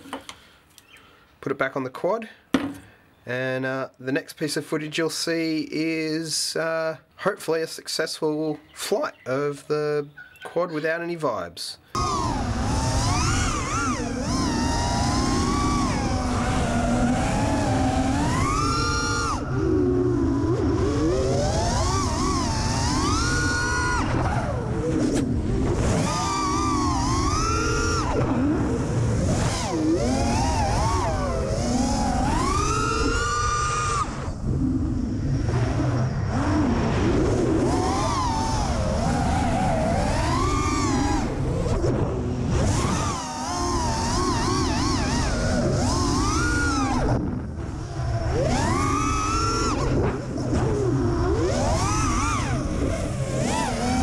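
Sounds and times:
quadcopter motors whining: 11.9 - 54.0
wind rumble: 12.0 - 53.7.

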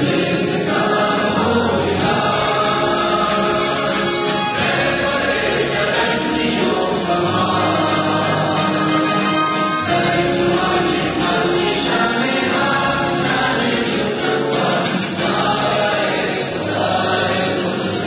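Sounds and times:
chorus of voices singing: 0.0 - 18.0
instrumental backing: 0.0 - 18.0.

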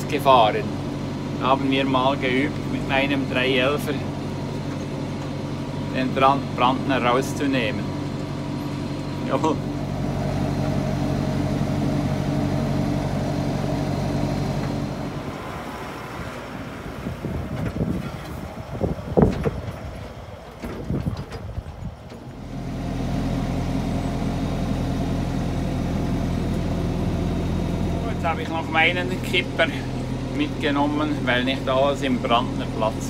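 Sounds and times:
tractor engine drone: 0.0 - 33.0.

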